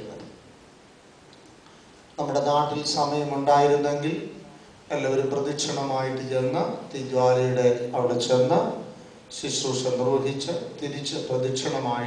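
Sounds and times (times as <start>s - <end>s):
man's voice echoing: 2.2s - 12.0s.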